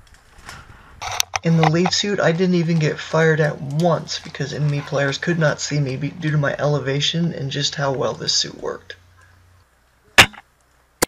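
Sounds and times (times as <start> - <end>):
airsoft rifle shot: 10.2 - 10.4.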